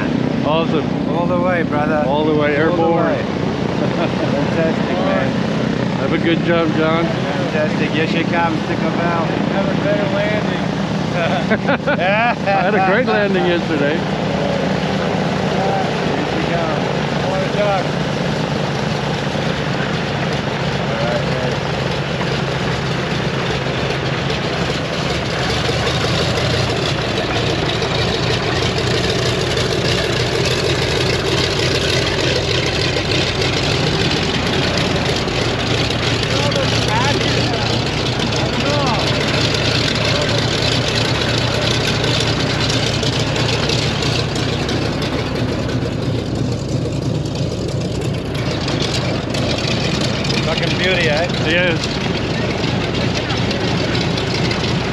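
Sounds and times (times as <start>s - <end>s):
piston aircraft engines idling: 0.0s - 54.9s.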